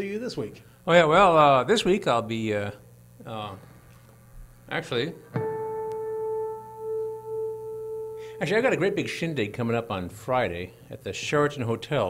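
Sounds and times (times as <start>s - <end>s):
acoustic guitar being tuned: 5.2s - 10.0s
tuning fork ringing: 5.3s - 10.0s.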